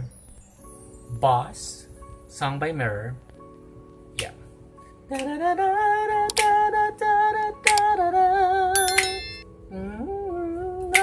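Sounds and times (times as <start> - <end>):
bright chime: 8.8 - 9.4.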